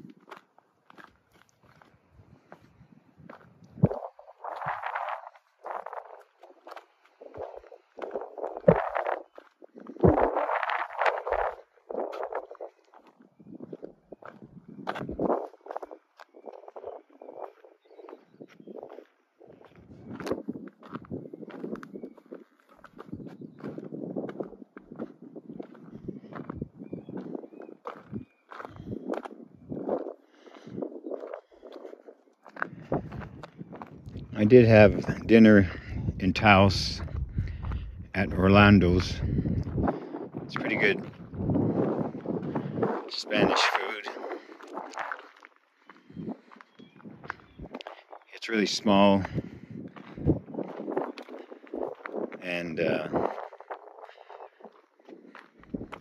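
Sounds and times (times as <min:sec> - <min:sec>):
footsteps on gravel trail: 0:00.0 - 0:56.0.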